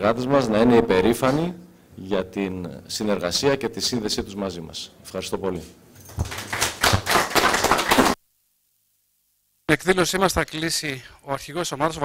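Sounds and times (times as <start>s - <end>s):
audience applauding: 6.1s - 8.2s.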